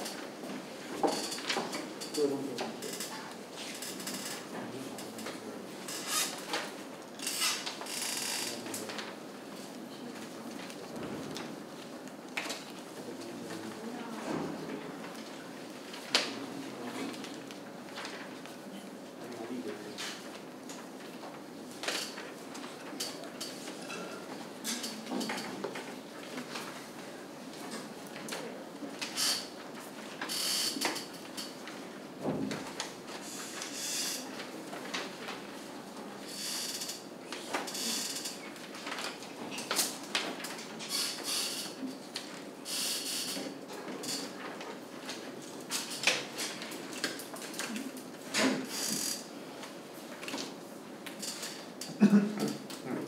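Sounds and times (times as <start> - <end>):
paper rustling and shuffling: 8.5 - 24.5, 31.0 - 35.8, 38.5 - 41.4, 43.5 - 48.8.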